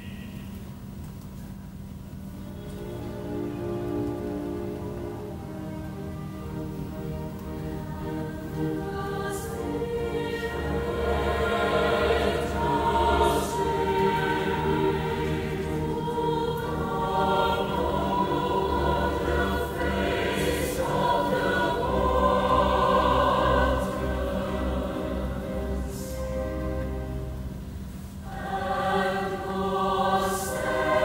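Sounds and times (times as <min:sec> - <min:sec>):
choir singing with orchestra: 0:02.4 - 0:31.0.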